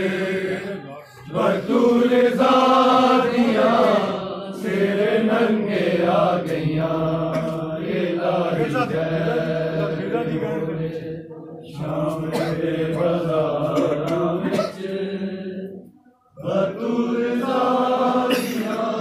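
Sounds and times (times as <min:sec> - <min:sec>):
men chanting a lament: 0:00.0 - 0:19.0.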